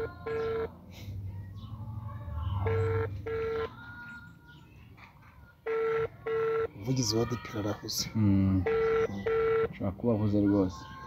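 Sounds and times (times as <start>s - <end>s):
telephone ringback tone: 0.0s - 0.7s, 2.6s - 3.7s, 5.6s - 6.8s, 8.7s - 9.8s.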